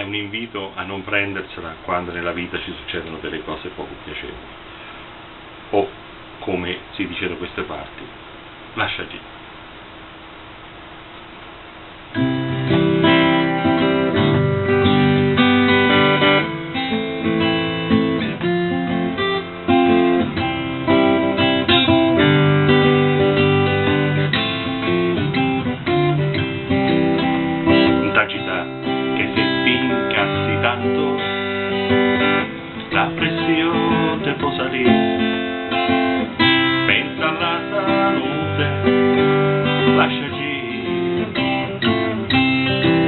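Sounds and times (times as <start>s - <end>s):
acoustic guitar strumming chords: 12.0s - 43.0s.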